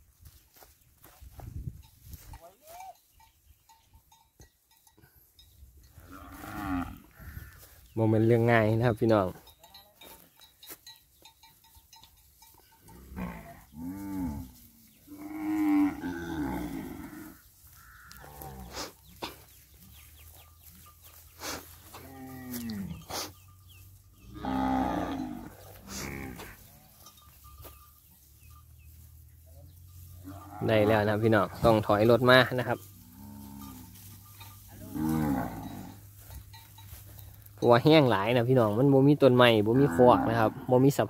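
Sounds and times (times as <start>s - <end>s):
cattle mooing: 6.0s - 7.7s, 12.9s - 18.9s, 21.8s - 23.3s, 24.3s - 27.0s, 30.2s - 31.7s, 33.0s - 36.1s, 39.6s - 40.8s.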